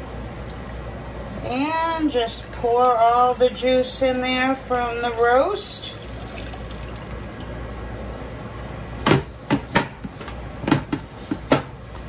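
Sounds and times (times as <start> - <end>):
liquid pouring through strainer: 5.8 - 7.6.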